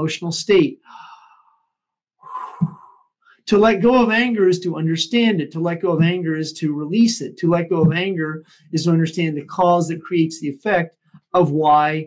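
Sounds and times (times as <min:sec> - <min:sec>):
man breathing: 0:00.8 - 0:03.4, 0:08.4 - 0:08.7.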